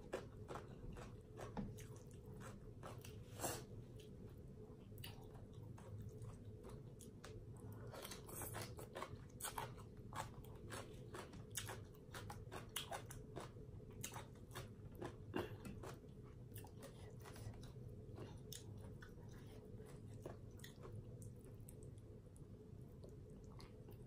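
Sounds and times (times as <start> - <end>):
chewing and crunching food: 0.0 - 24.0
low steady hum: 0.0 - 24.0.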